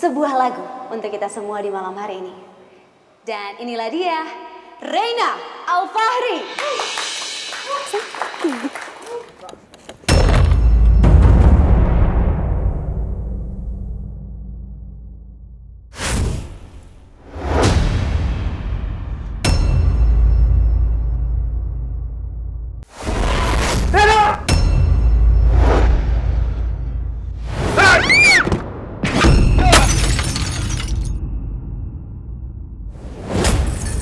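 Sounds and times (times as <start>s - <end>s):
glass shattering: 29.2s - 31.2s, 33.4s - 34.0s.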